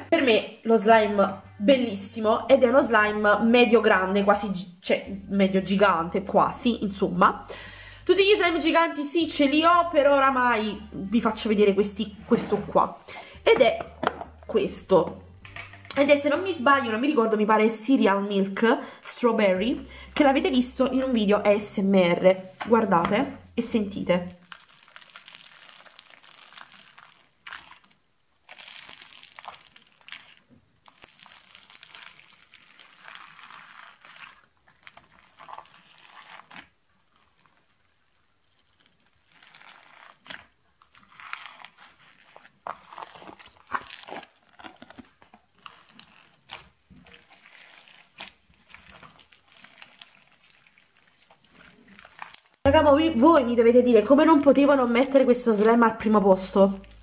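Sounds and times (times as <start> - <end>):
crunchy slime crackling: 23.2 - 52.8, 53.5 - 57.0.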